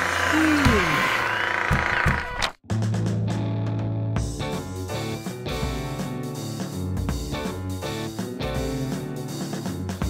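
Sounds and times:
cartoon dragon humming: 0:00.0 - 0:01.7
background music: 0:02.7 - 0:10.0.

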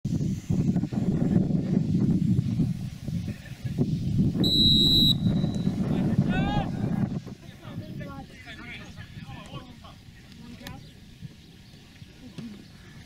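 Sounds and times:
wind rumbling on microphone: 0:00.0 - 0:13.0
referee's whistle blast: 0:04.4 - 0:05.8.

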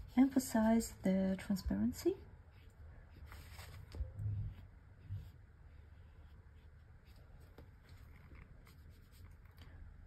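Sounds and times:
low room hum: 0:00.0 - 0:10.0
brush scratching on paper: 0:02.4 - 0:09.5.

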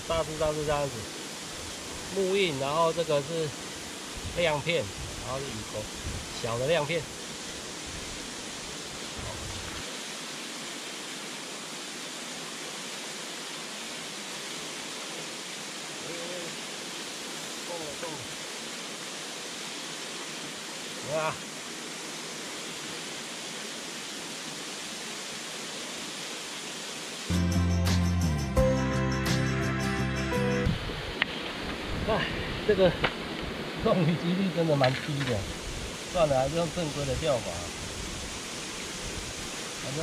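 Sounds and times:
small waterfall rushing: 0:00.0 - 0:27.4, 0:30.6 - 0:40.0
loud music: 0:27.3 - 0:30.7.

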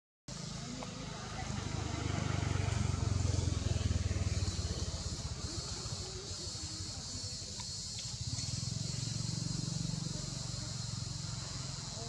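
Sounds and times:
vehicle engine passing by: 0:00.3 - 0:12.0
steady high hiss: 0:02.7 - 0:12.0.

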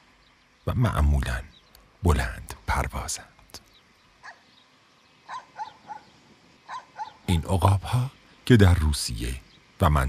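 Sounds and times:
bird of prey yelping calls: 0:04.2 - 0:04.6, 0:05.2 - 0:07.3.

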